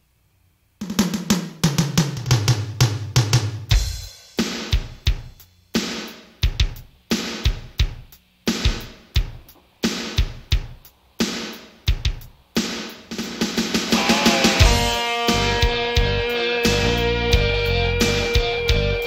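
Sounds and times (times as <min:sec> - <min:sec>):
drum kit beat with cymbals: 0:00.8 - 0:19.0.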